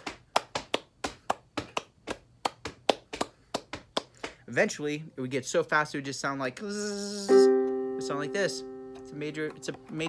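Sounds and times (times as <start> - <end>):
hands clapping rhythm: 0.0 - 4.5, 9.0 - 10.0.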